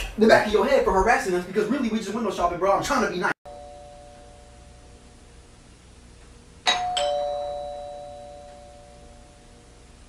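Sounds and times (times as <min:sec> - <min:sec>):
two-note doorbell chime: 0:03.5 - 0:04.8, 0:06.7 - 0:09.4.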